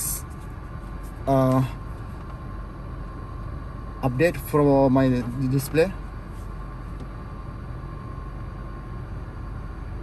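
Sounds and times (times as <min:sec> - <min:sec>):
car cabin hum and hiss: 0:00.0 - 0:10.0
faint steady tone: 0:00.0 - 0:10.0.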